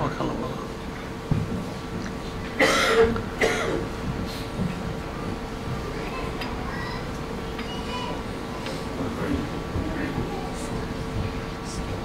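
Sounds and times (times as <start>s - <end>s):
man coughing: 2.6s - 3.9s.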